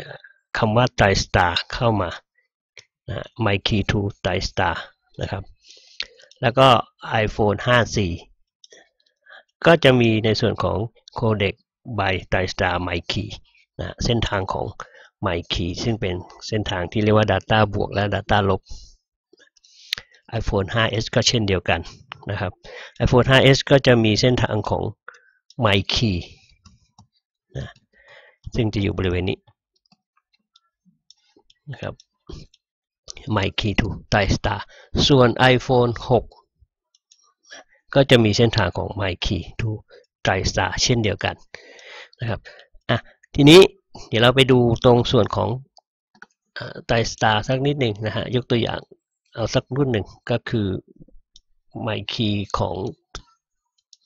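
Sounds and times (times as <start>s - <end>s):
man speaking: 0.0s - 2.2s, 3.1s - 8.3s, 9.3s - 18.8s, 19.9s - 26.4s, 27.6s - 27.8s, 28.4s - 29.4s, 31.6s - 32.5s, 33.1s - 36.4s, 37.5s - 45.7s, 46.6s - 51.1s, 51.8s - 53.2s
man talking: 0.0s - 2.2s, 3.1s - 8.3s, 9.3s - 18.8s, 19.9s - 26.4s, 27.6s - 27.8s, 28.4s - 29.4s, 31.6s - 32.5s, 33.1s - 36.4s, 37.5s - 45.7s, 46.6s - 51.1s, 51.8s - 53.2s.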